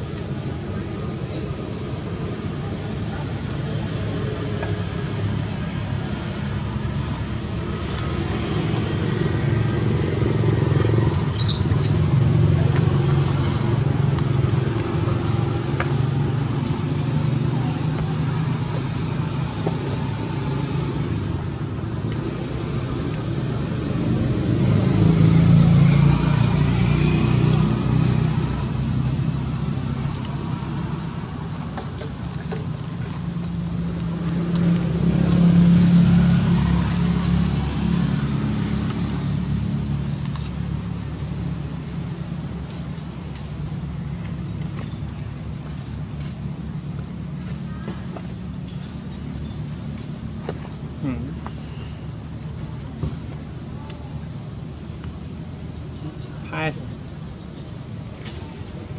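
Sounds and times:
passing road traffic hum: 0.0s - 58.9s.

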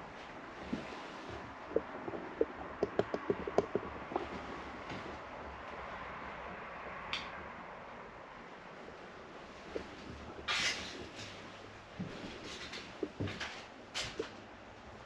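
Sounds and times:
short knocks and creaks: 0.7s - 5.2s
road traffic hum: 1.2s - 15.0s.

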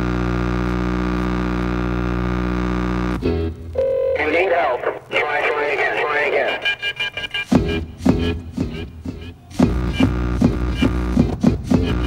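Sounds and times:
record scratching: 4.2s - 8.9s.

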